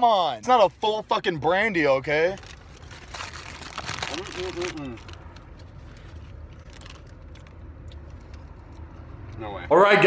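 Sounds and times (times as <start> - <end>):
chewing with faint crunches: 3.8 - 9.4.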